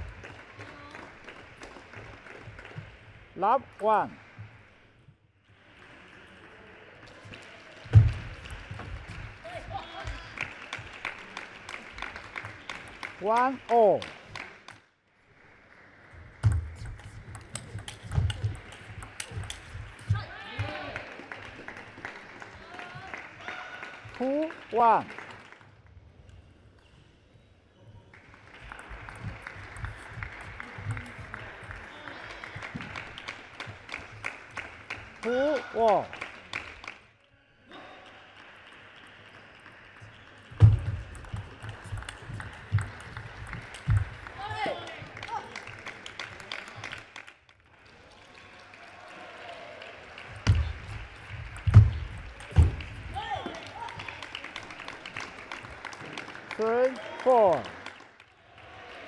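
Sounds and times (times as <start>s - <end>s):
table tennis ball clicks: 16.5s - 19.6s.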